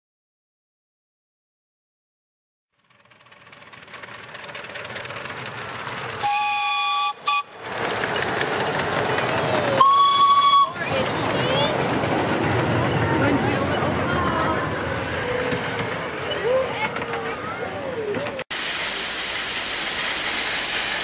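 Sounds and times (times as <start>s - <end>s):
train running noise and hiss: 2.8s - 21.0s
train whistle blasts: 6.2s - 7.6s, 9.8s - 10.8s.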